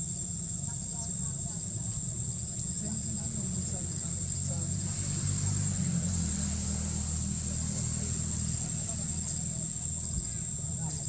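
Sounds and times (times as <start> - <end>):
faint voices: 0.0 - 11.0
high-pitched insect drone: 0.0 - 11.0.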